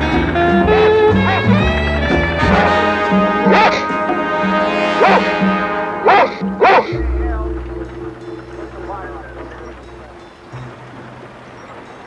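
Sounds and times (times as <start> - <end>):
background music: 0.0 - 12.0
low steady drone: 0.0 - 12.0
dog barking: 3.3 - 4.2, 4.9 - 7.0.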